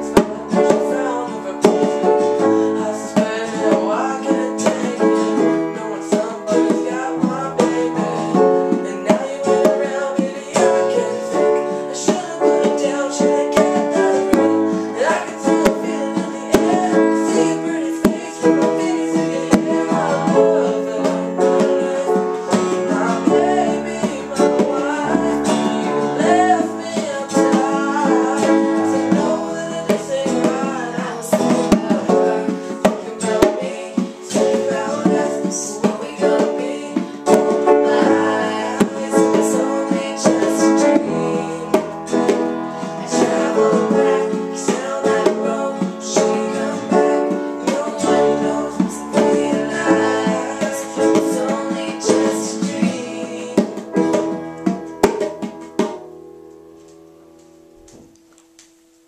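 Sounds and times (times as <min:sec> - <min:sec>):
person singing: 0:00.0 - 0:56.0
strummed acoustic guitar: 0:00.0 - 0:56.2
bongos: 0:00.0 - 0:56.3
grand piano: 0:00.0 - 0:59.0.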